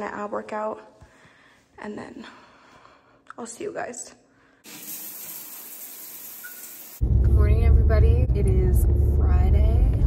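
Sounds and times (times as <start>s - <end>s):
shower water hissing: 4.6s - 7.0s.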